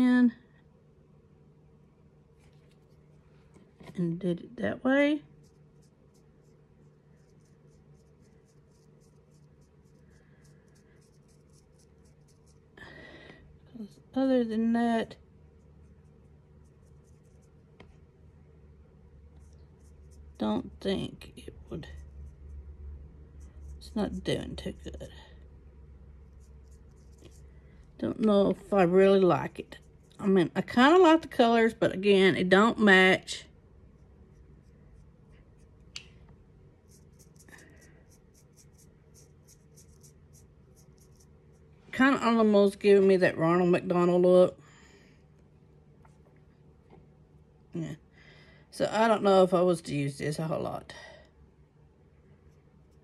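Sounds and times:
faint steady hum: 0:00.0 - 0:53.0
applicator scratching on brow: 0:05.3 - 0:12.8, 0:15.5 - 0:17.8, 0:19.3 - 0:22.7, 0:26.2 - 0:27.5, 0:36.8 - 0:41.8.

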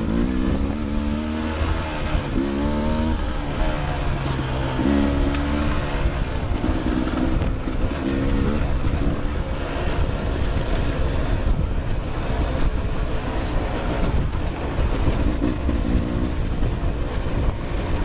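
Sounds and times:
dirt bike engine revving: 0:00.0 - 0:18.0
wind rumble on microphone: 0:00.0 - 0:18.0.

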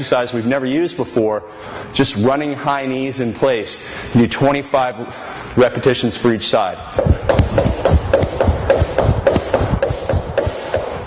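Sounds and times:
footsteps on wooden floor: 0:07.0 - 0:11.0.

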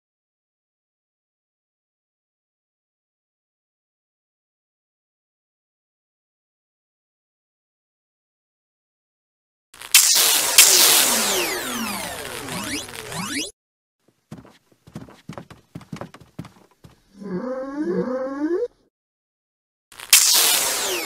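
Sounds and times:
falling pitch sweeps: 0:10.6 - 0:13.5
light cartoon footstep taps: 0:14.1 - 0:17.1
creature voice sliding in pitch: 0:17.2 - 0:18.9.

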